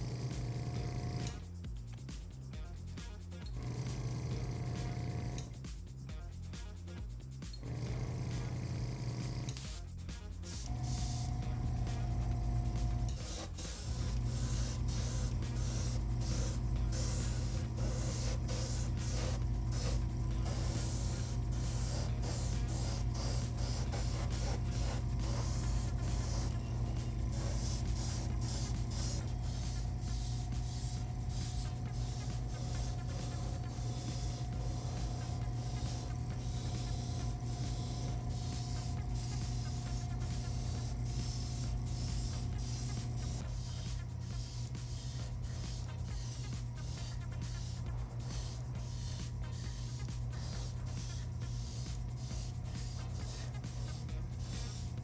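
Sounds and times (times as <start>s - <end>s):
airbrush compressor humming: 0.0s - 1.4s, 3.5s - 5.6s, 7.6s - 9.7s, 10.5s - 55.0s
airbrush spraying hiss: 9.5s - 55.0s.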